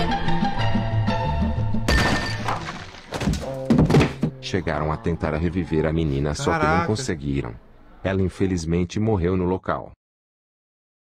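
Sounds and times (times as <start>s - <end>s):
music: 0.0s - 2.0s.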